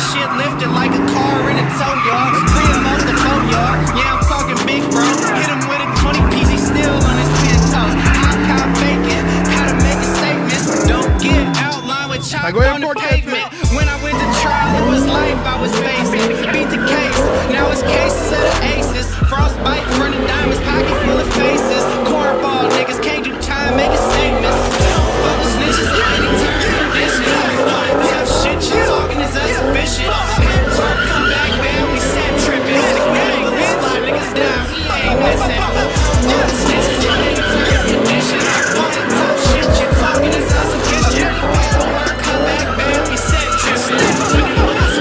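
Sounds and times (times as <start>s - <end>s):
rap music with heavy bass: 0.0s - 45.0s
tyres squealing: 0.0s - 45.0s.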